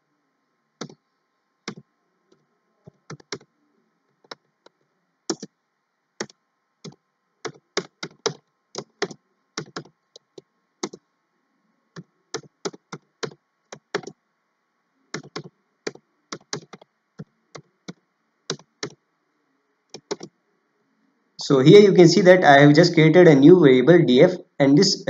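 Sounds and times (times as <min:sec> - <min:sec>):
keyboard key clicks: 0:15.1 - 0:16.9, 0:19.9 - 0:20.3.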